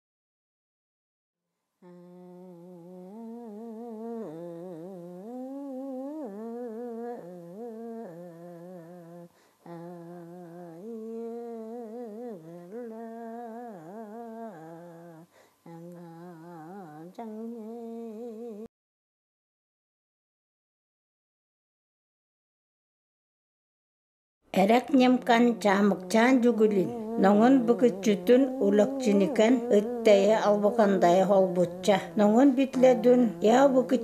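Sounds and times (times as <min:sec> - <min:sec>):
person humming a slow tune: 0:01.8 - 0:18.7, 0:25.3 - 0:34.0.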